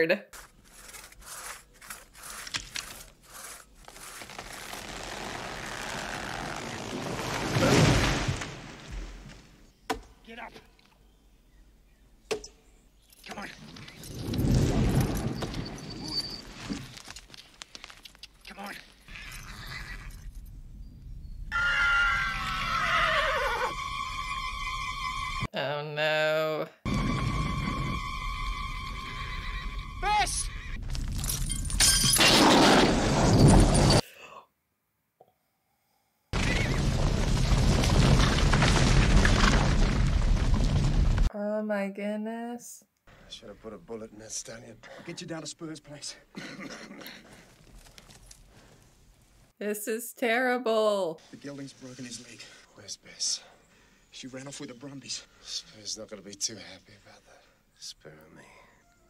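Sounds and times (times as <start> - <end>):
tree cracking and crashing down: 4.0 - 9.6, 36.4 - 41.3
horse whinnying: 21.5 - 24.4
film score held notes: 26.9 - 31.0.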